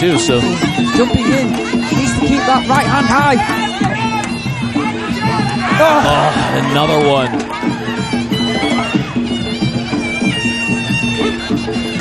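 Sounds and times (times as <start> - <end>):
pulsing drum rhythm: 0.0 - 12.0
shrill reedy oboe melody: 0.2 - 12.0.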